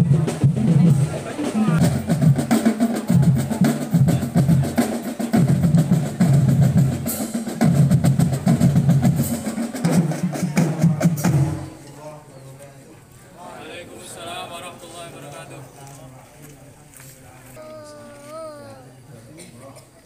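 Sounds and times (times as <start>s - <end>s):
marching drum band: 0.0s - 11.8s.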